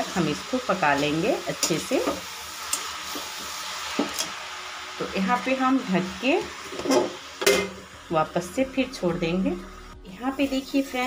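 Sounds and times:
food sizzling in pan: 0.0 - 11.0.

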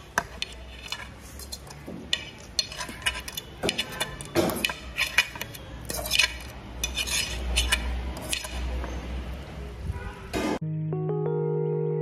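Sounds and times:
metal fork scraping ceramic plate: 0.0 - 9.1.

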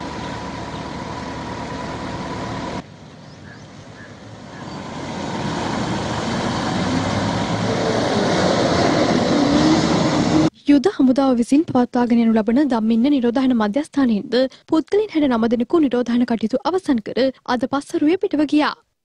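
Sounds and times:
bus engine approaching: 0.0 - 10.6
bus engines running: 0.0 - 10.6.

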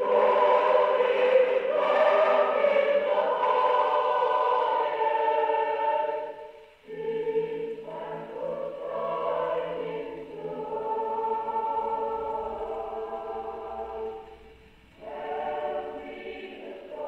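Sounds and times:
choir singing a hymn on gramophone: 0.0 - 17.0.

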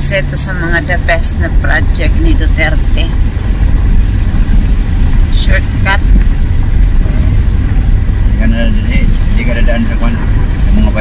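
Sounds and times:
car engine rumble: 0.0 - 11.0
tyres on road: 0.0 - 11.0.

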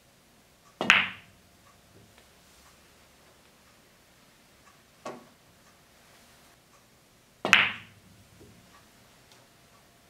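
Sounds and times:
pool balls click-clack: 0.8 - 1.3, 7.4 - 8.7.

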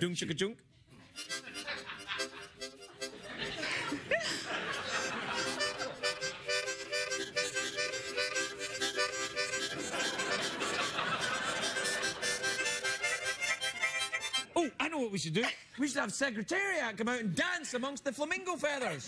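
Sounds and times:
harmonicas playing: 4.5 - 14.6.

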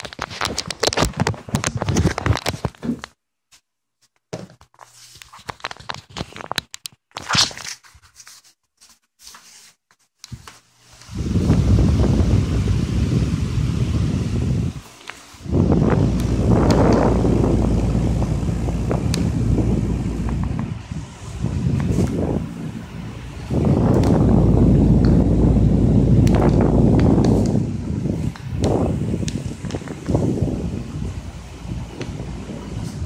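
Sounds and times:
low rumbling wind on microphone: 11.1 - 14.8, 15.4 - 33.0.

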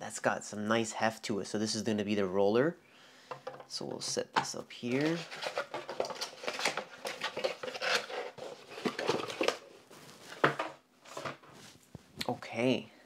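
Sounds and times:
cardboard rustling and scraping: 4.8 - 12.2.

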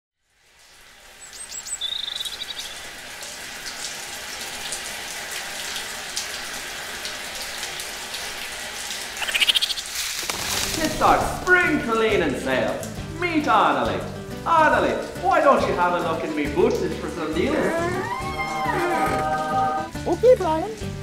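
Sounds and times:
shower water running: 0.2 - 21.0
high bird-like chirps: 1.2 - 2.8, 9.2 - 9.9.

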